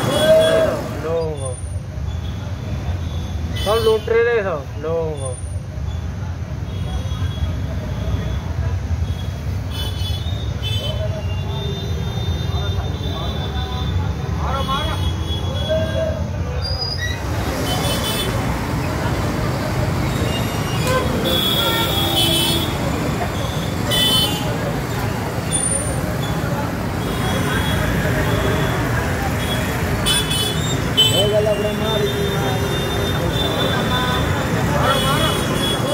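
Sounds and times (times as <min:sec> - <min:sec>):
crowd talking and calling out: 0:00.0 - 0:09.1, 0:10.8 - 0:35.9
traffic and engine rumble: 0:00.0 - 0:35.9
vehicle horn: 0:20.8 - 0:22.8.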